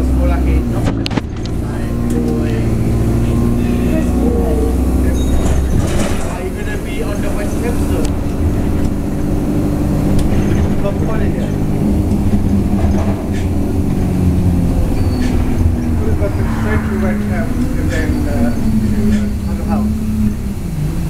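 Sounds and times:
bus engine and road rumble: 0.0 - 21.0.

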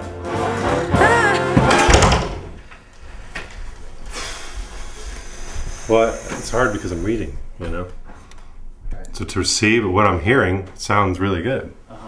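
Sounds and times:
room noise hiss: 2.1 - 12.0
man speaking: 5.9 - 8.0.

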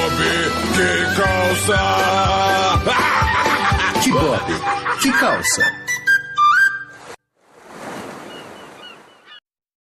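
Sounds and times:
ocean surf: 6.9 - 9.3.

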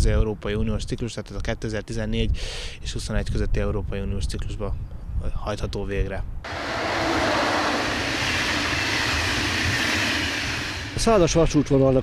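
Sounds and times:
passing train wheels rushing: 6.5 - 12.0.

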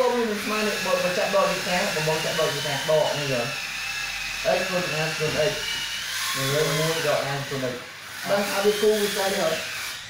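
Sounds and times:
man speaking: 4.4 - 5.7, 6.4 - 9.6.

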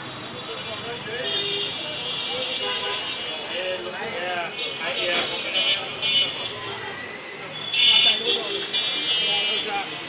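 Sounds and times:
busy street traffic: 0.0 - 10.0
people talking: 0.4 - 10.0.

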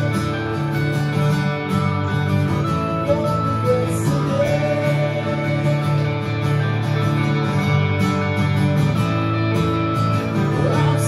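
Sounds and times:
live band with guitars: 0.0 - 11.0.

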